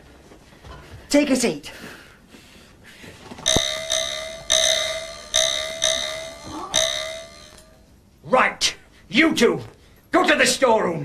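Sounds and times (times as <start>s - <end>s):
bell-like dings: 3.5s - 7.8s.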